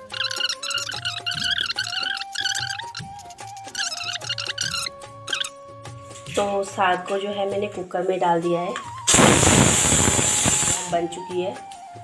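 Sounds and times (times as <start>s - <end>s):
pressure cooker whistle hissing: 9.0s - 11.2s.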